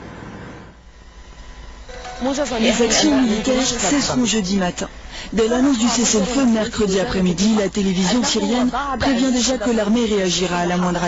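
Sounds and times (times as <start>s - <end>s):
quiet low hum: 0.2s - 11.0s
faint steady tones: 0.8s - 11.0s.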